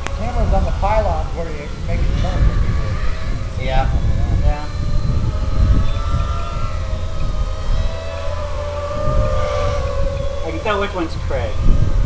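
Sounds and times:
quadcopter motors whining: 0.0s - 12.0s
wind on microphone: 0.0s - 12.0s.

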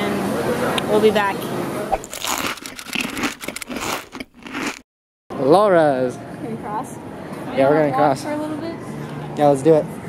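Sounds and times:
rapid crinkling and crackling: 2.0s - 4.8s.

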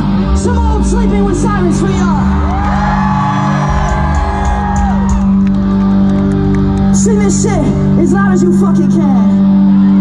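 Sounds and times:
live rock band playing: 0.0s - 10.0s
crowd whooping: 2.2s - 6.0s.

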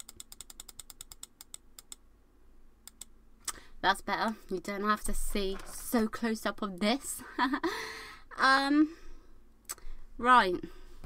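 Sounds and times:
rapid small clicks: 0.0s - 2.0s, 2.8s - 3.6s.

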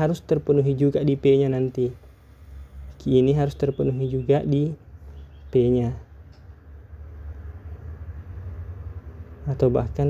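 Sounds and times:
person speaking: 0.0s - 2.2s, 2.9s - 6.2s.

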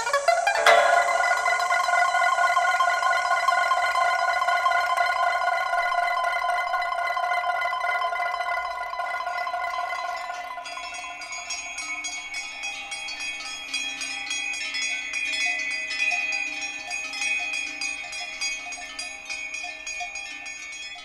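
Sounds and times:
sharp plucked attack: 0.0s - 5.7s
higher electronic sound: 0.0s - 6.4s
sustained ringing tone: 0.0s - 21.0s.

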